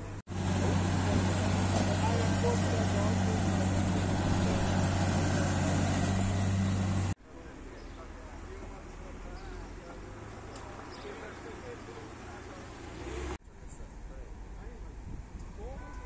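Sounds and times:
engine hum: 0:00.0 - 0:15.6
road noise: 0:00.0 - 0:16.0
faint voices: 0:00.4 - 0:05.8, 0:07.2 - 0:15.0.

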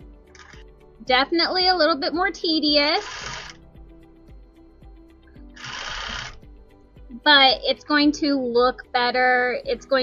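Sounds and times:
faint background music: 0:00.0 - 0:10.0
sewing machine stitching: 0:03.0 - 0:03.6, 0:05.6 - 0:06.4.

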